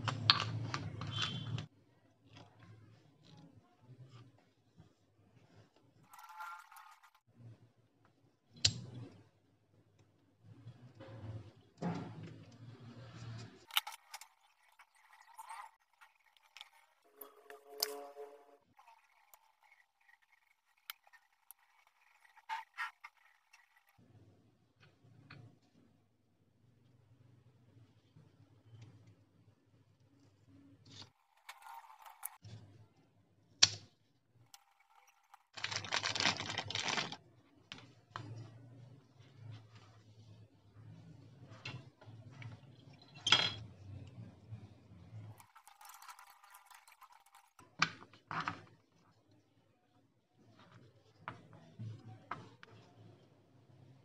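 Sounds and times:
plastic bag crinkling: 0:34.6 - 0:37.3.

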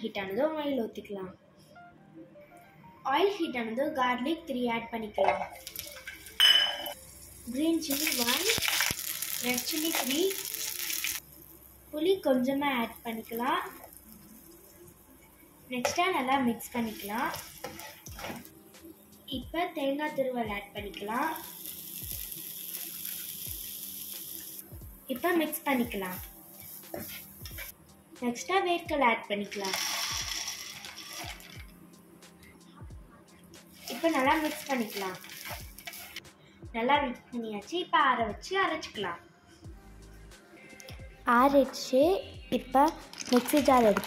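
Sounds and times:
metal bowl clinking on pan: 0:05.3 - 0:07.0
hot oil sizzling in frying pan: 0:05.6 - 0:18.6, 0:20.6 - 0:27.8, 0:29.5 - 0:31.7, 0:33.7 - 0:36.2
soft low thumps: 0:24.8 - 0:25.0.

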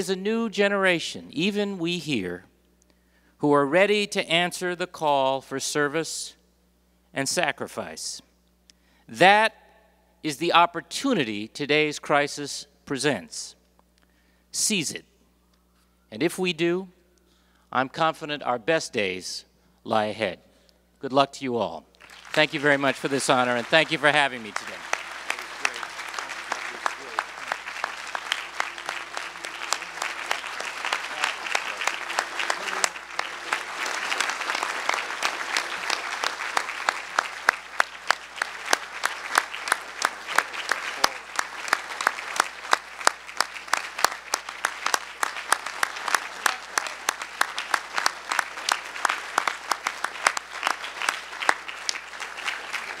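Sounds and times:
large audience applauding: 0:22.0 - 0:53.0
sharp individual claps: 0:22.0 - 0:53.0.

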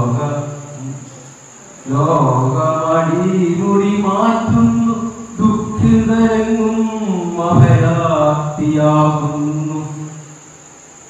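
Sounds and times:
man singing into a microphone: 0:01.9 - 0:10.1.

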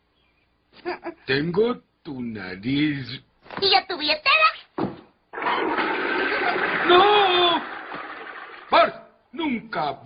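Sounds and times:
toilet flushing: 0:05.3 - 0:08.8
man shouting: 0:06.8 - 0:07.7.

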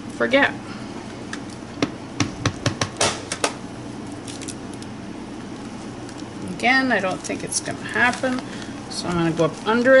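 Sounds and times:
stamps tapping on ink pad: 0:02.2 - 0:03.2.

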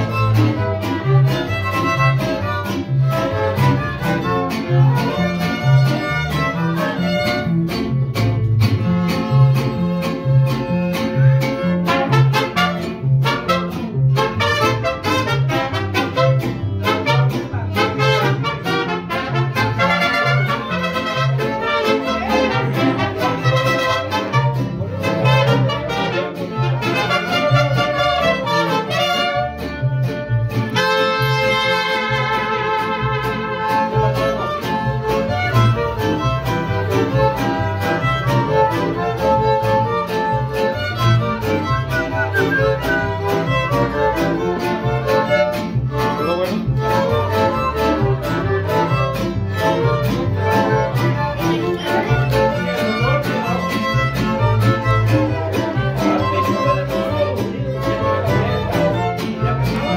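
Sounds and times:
violins playing melody: 0:00.0 - 0:07.7, 0:08.8 - 0:59.9
bass rhythm: 0:00.0 - 0:59.9
strummed guitars: 0:00.0 - 0:59.9.

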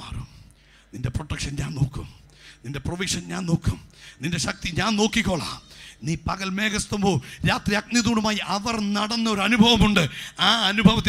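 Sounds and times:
man preaching into a microphone: 0:01.0 - 0:11.0.

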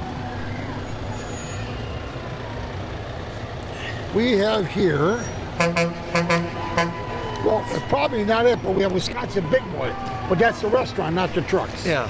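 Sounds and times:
diesel truck engine passing: 0:00.0 - 0:12.0.

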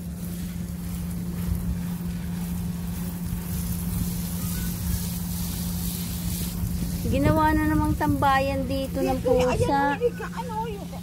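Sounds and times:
motor humming: 0:00.0 - 0:11.0
wind rumbling on microphone: 0:00.0 - 0:11.0.

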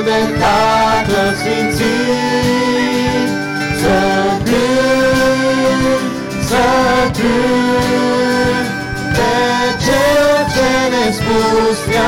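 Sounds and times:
acoustic guitar: 0:00.0 - 0:12.0
group singing a hymn: 0:00.0 - 0:12.0
violin: 0:00.0 - 0:12.0.

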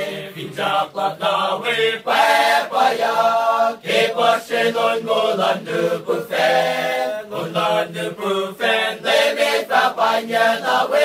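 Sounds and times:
men singing a cappella: 0:00.0 - 0:11.0.

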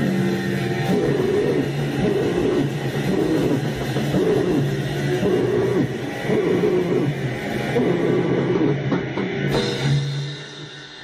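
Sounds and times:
distorted guitar and drums: 0:00.0 - 0:11.0
harsh vocal: 0:00.8 - 0:08.8.

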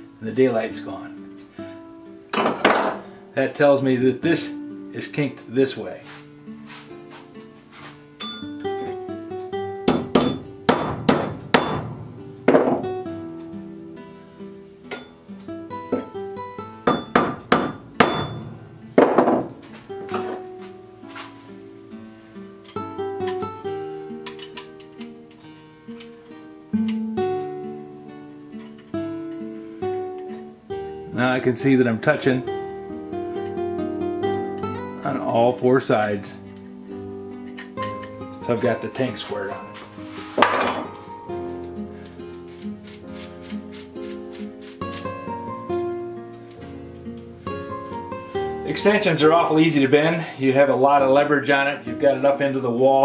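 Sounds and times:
plucked-string background music: 0:00.0 - 0:53.0
hammer striking steel: 0:08.2 - 0:08.6, 0:09.9 - 0:12.8, 0:14.9 - 0:15.4, 0:16.9 - 0:19.6.

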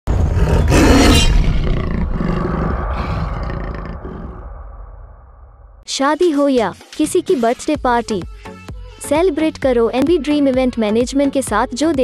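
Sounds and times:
big cat roar: 0:00.1 - 0:04.5.

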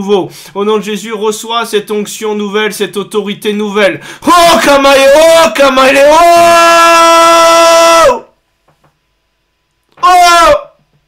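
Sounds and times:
man crying out: 0:04.2 - 0:08.3, 0:10.0 - 0:10.8.

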